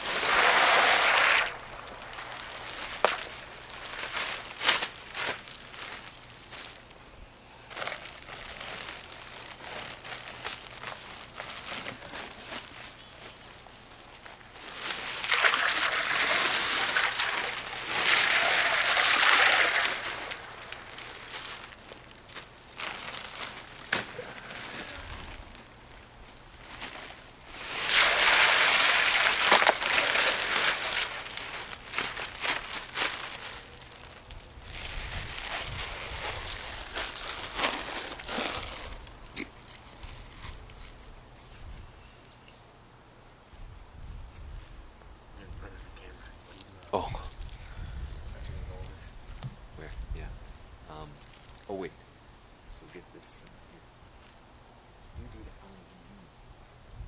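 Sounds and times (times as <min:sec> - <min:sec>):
ice cubes pouring into water: 0:00.0 - 0:03.1, 0:15.2 - 0:20.8, 0:27.7 - 0:31.3.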